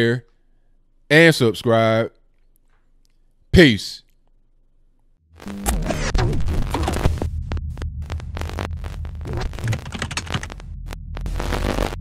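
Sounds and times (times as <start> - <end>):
deep bass drone: 5.4 - 12.0
glitchy static clicks: 5.4 - 12.0.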